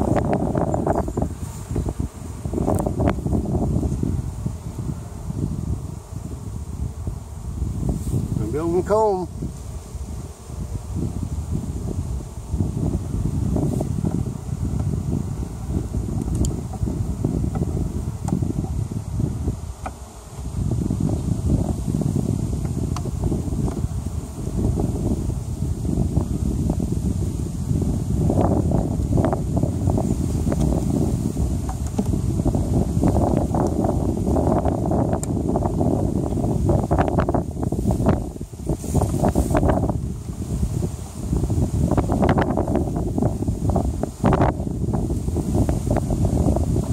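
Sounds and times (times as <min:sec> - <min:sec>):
microphone handling noise: 0:00.0 - 0:46.9
wind rumble: 0:00.0 - 0:46.9.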